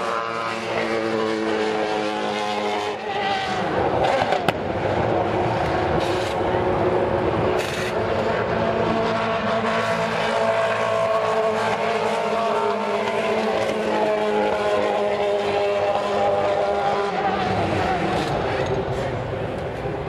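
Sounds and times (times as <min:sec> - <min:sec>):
racing car engines droning: 0:00.0 - 0:20.0.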